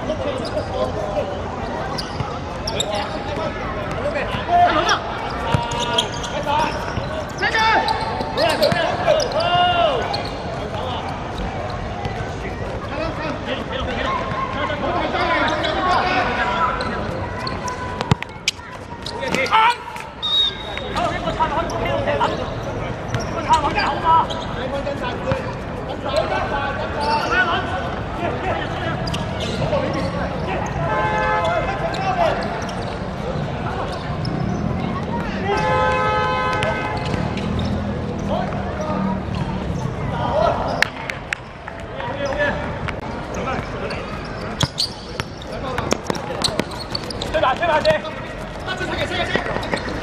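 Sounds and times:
players shouting: 2.0s - 11.1s.

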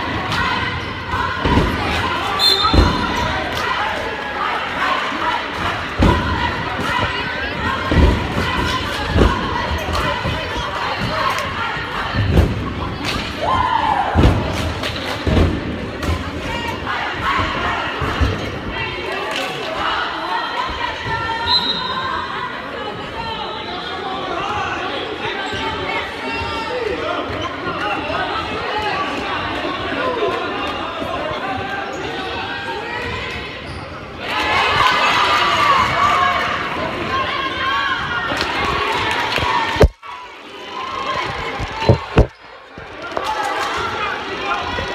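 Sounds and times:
crowd voices: 0.0s - 44.9s.

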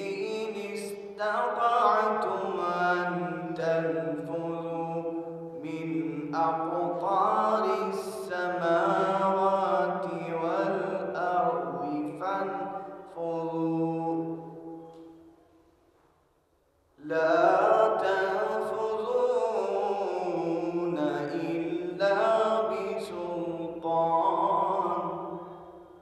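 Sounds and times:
man chanting recitation: 0.0s - 14.5s, 17.0s - 25.6s.

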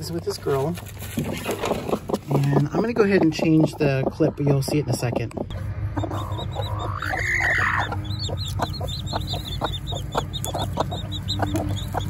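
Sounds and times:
chicks peeping: 1.2s - 12.0s
rising and falling call: 5.9s - 12.0s.

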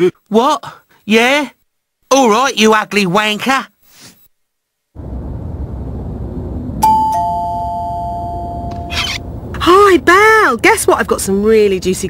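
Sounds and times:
low background noise: 0.0s - 12.0s
two-tone doorbell chime: 6.8s - 8.9s.

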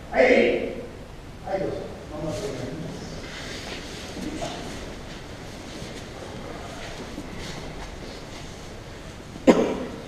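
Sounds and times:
low background noise: 0.0s - 10.0s
person coughing: 9.4s - 10.0s.

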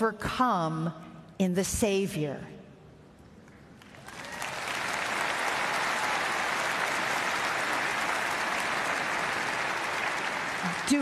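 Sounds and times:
large audience applauding: 3.8s - 11.0s.

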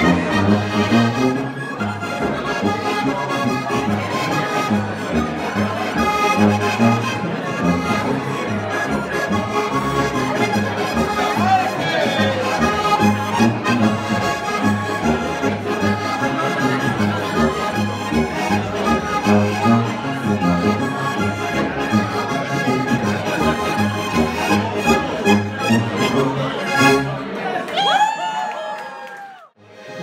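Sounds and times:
tuba oom-pah bass: 0.0s - 27.3s
button accordions playing polka: 0.0s - 27.4s, 29.6s - 30.0s.

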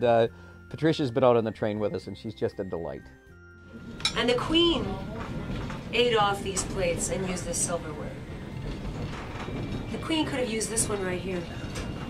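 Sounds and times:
train running rumble: 3.8s - 12.0s.

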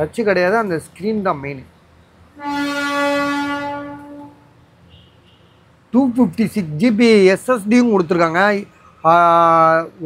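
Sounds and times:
vehicle horn blast: 2.3s - 5.7s.

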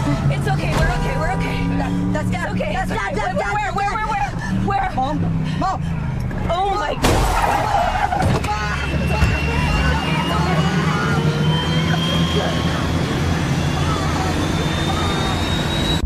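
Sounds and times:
car engine drone: 0.0s - 16.0s
panicked voices: 6.6s - 16.0s
thin high rising tone: 7.6s - 16.0s.

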